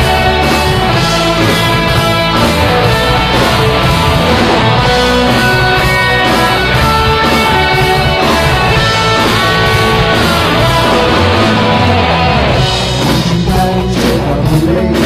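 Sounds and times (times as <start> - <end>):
electric guitar: 0.0 - 15.0
rock band playing: 0.0 - 15.0.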